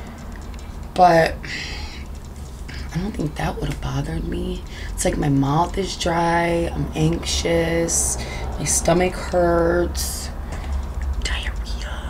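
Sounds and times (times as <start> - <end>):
steady low hum: 0.0 - 12.0
woman whispering: 1.0 - 5.2, 11.2 - 12.0.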